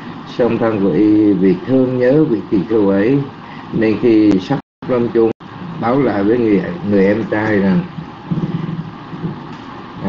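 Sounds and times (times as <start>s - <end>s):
low voiced hum: 0.0s - 10.0s.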